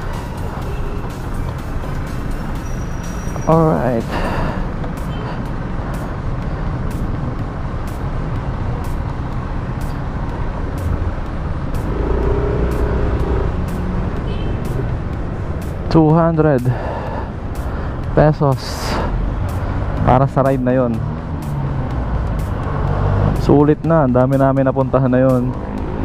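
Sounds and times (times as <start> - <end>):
road traffic: 0.0 - 26.0
low rumble: 10.6 - 15.9.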